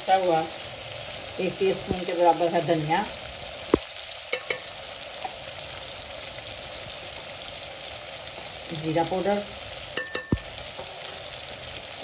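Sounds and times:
masala sizzling in hot oil: 0.0s - 12.0s
metal spoon knocking on pot: 4.4s - 4.7s, 10.0s - 10.5s.

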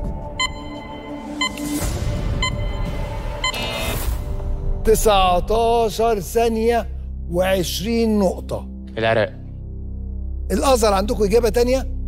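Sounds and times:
tense music: 0.0s - 12.0s
countdown timer beeps: 0.4s - 4.0s.

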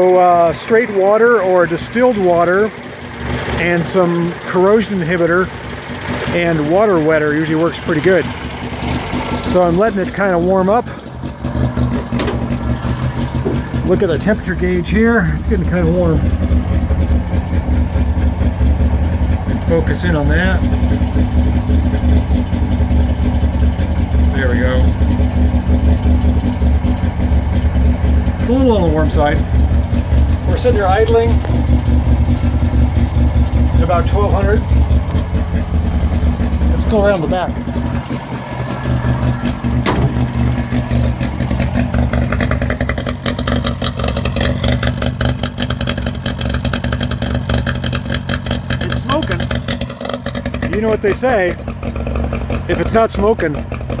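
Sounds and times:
two-stroke engine idling: 0.0s - 54.0s
sharp knock: 39.8s - 40.3s.

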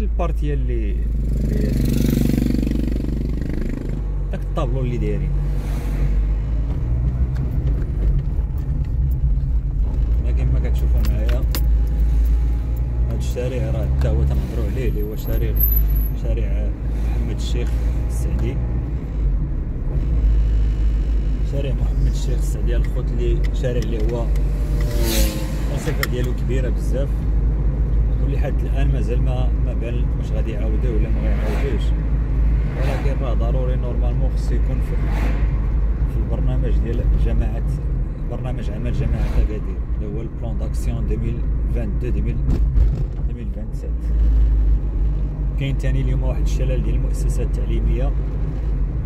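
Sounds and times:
man speaking: 0.0s - 1.9s, 28.2s - 31.9s, 32.8s - 35.4s, 38.3s - 42.4s
car driving on paved road: 0.0s - 49.0s.

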